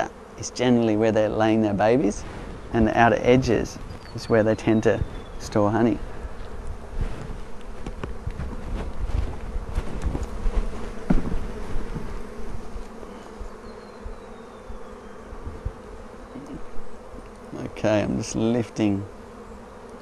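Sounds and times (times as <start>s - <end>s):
bees humming: 0.0s - 20.0s
wooden frames knocking: 11.0s - 12.2s.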